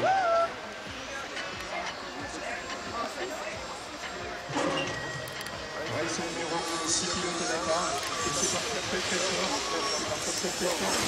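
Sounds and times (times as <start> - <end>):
background chatter: 0.0 - 11.0
faint music: 0.0 - 11.0.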